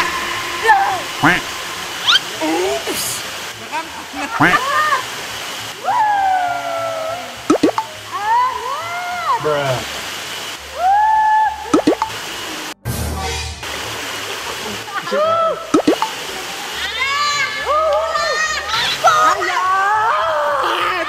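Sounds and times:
high-pitched sliding squeals: 0.0 - 3.0
rush of water: 0.0 - 21.0.

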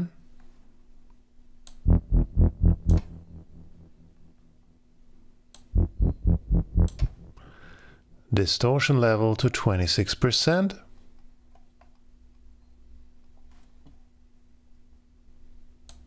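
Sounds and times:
staccato synth bass notes: 1.8 - 4.4, 5.8 - 7.7.

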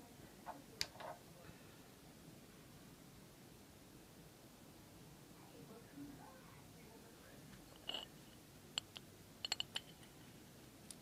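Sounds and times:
small metal parts clicking: 8.8 - 10.0.

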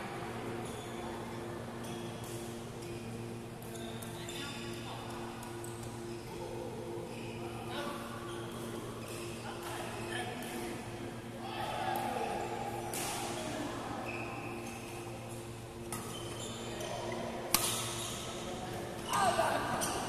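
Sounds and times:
steady hum: 0.0 - 20.0
racket hitting shuttlecock: 17.5 - 17.8.

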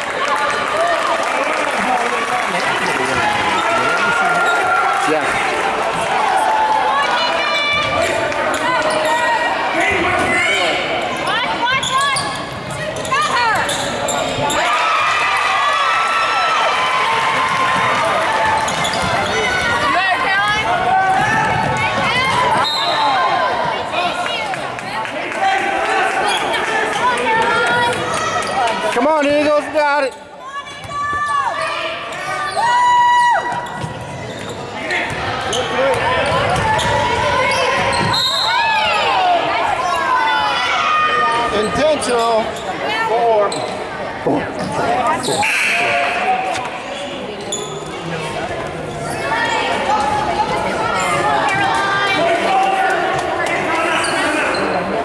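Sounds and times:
indistinct shouts and chatter: 0.0 - 55.0.

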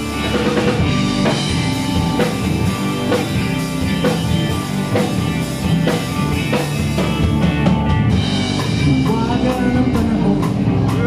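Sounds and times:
drum kit beat: 0.0 - 11.0
live rock band playing: 0.0 - 11.0.

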